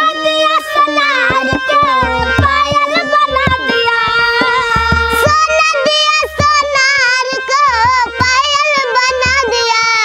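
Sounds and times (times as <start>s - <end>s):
girl singing with vibrato: 0.0s - 10.0s
harmonium: 0.0s - 10.0s
percussion beat: 0.8s - 10.0s.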